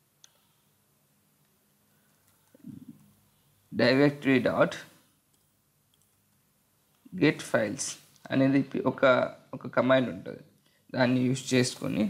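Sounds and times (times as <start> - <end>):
faint room tone hum: 0.0 - 12.0.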